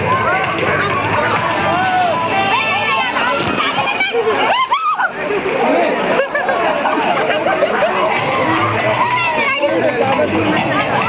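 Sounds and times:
group of people chattering: 0.0 - 11.0.

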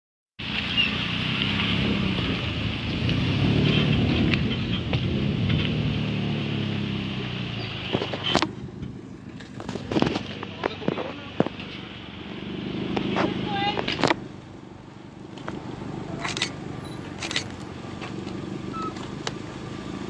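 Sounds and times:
vehicle engine rumbling: 0.4 - 20.0.

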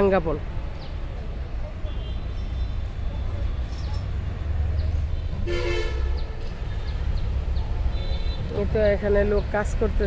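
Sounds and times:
road traffic rumble: 0.0 - 10.0
vehicle horn blast: 5.4 - 6.2.

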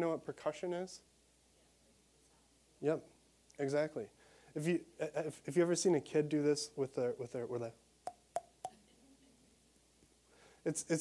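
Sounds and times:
finger tapping cheek hollow pops: 8.0 - 8.8.

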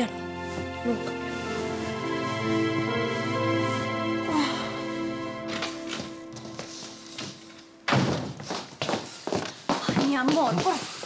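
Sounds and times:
soft background music: 0.0 - 8.5
heavy footsteps on wooden floor: 5.3 - 11.0
loud thump: 7.9 - 8.5.

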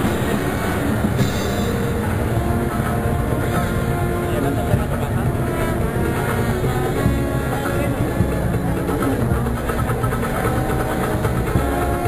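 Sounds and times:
dense low rumble: 0.0 - 12.0
processional band music: 0.0 - 12.0.

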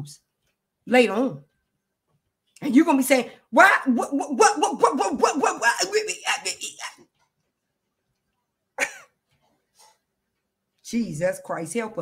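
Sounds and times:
woman exclaiming: 3.6 - 7.0.

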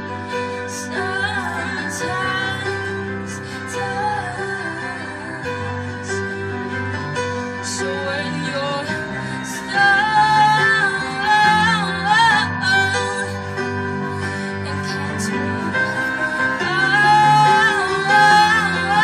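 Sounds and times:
woman singing with vibrato: 0.0 - 6.2, 7.6 - 19.0
instrumental accompaniment: 0.0 - 19.0.

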